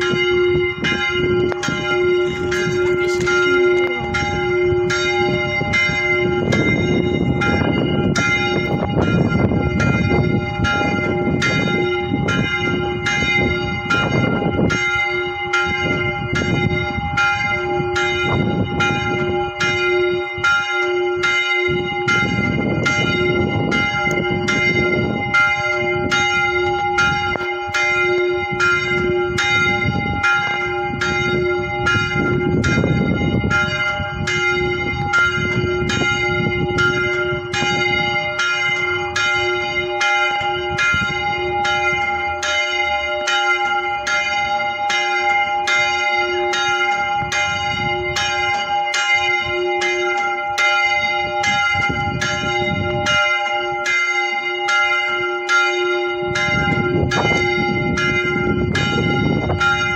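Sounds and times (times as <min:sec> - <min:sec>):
church bell ringing: 0:00.0 - 0:59.9.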